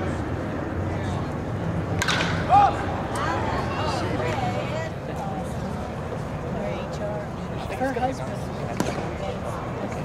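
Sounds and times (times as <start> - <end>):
crowd chatter: 0.0 - 10.0
baseball hitting plate pop: 2.0 - 2.4.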